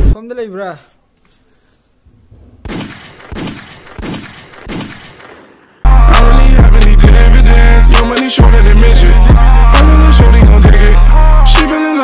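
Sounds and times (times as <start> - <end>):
sharp echoing bangs: 2.3 - 5.8
loud music: 5.9 - 12.0.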